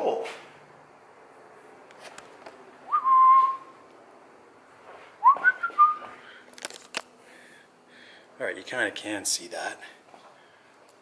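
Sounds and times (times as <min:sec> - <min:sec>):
person whistling: 0:02.9 - 0:03.7, 0:05.2 - 0:06.2.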